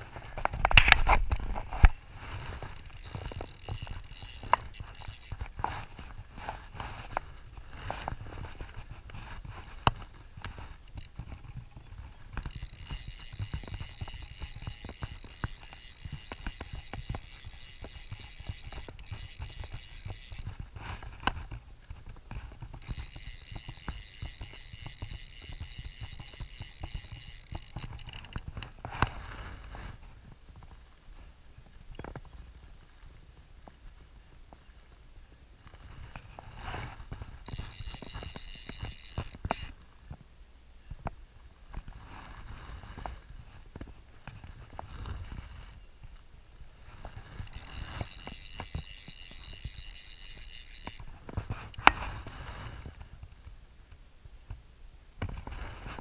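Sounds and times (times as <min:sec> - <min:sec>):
fly reel ratcheting: 0:00.1 - 0:34.6, 0:35.6 - 0:53.1.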